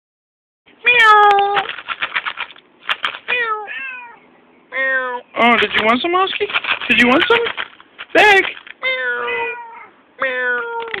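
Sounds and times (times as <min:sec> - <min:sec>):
cat meowing: 0:00.8 - 0:01.7, 0:03.3 - 0:05.3, 0:08.8 - 0:11.0.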